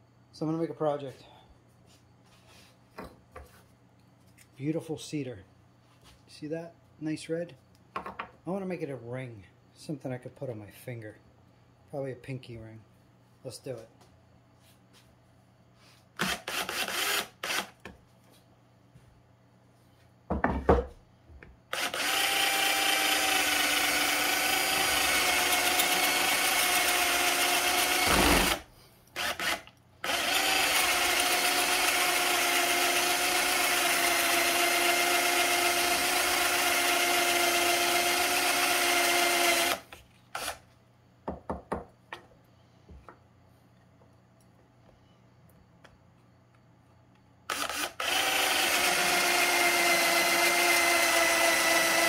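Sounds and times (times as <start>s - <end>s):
power drill boring through wood: 16.2s - 17.7s, 21.7s - 40.6s, 47.5s - 52.0s.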